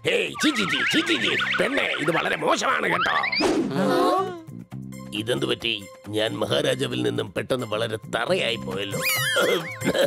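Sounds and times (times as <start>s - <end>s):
background music: 0.0s - 10.0s
cartoon dialogue: 0.1s - 3.5s
high-pitched warbling sound effect: 0.4s - 3.5s.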